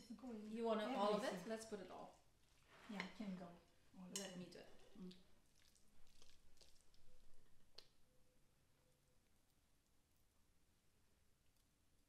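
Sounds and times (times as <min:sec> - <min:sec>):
spatula squishing vegetable salad: 0:02.1 - 0:08.0.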